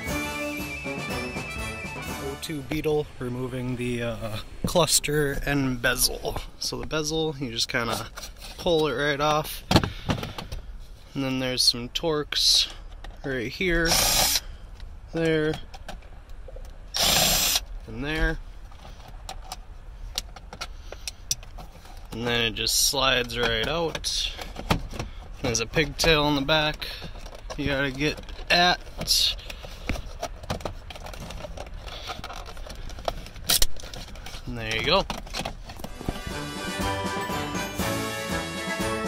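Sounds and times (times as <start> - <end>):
cordless drill spinning: 13.9 - 14.4, 17.0 - 17.6
plastic clicks scrapes and rattles: 27.0 - 35.8.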